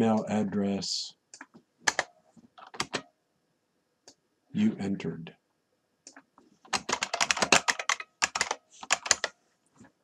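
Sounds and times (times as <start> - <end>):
computer keyboard typing: 1.4 - 3.0, 6.1 - 9.4.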